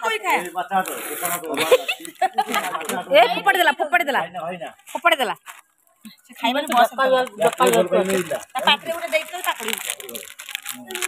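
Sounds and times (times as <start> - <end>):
snack wrapper crinkling: 4.8 - 11.0.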